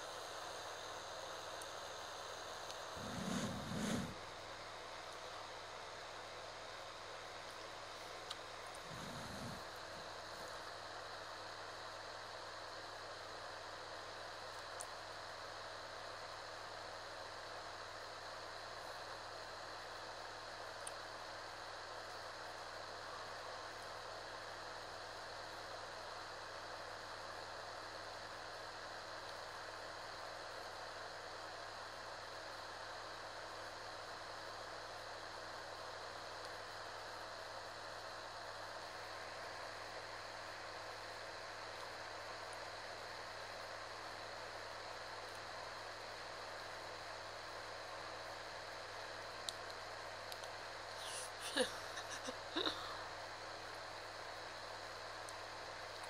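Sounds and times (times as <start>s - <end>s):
steady background hiss: 0.0s - 56.0s.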